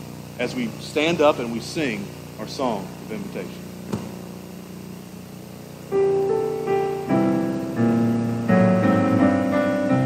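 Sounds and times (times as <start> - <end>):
steady low hum: 0.0 - 10.0
keyboard note: 5.9 - 10.0.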